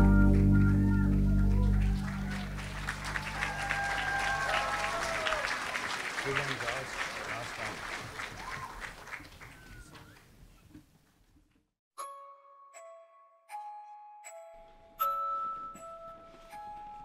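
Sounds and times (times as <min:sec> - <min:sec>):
music: 0:00.0 - 0:03.6, 0:12.0 - 0:17.0
audience applauding and cheering: 0:00.0 - 0:10.3.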